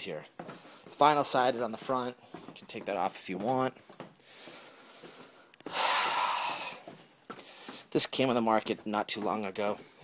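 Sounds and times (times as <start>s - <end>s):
person exhaling breathily: 4.3s - 7.8s.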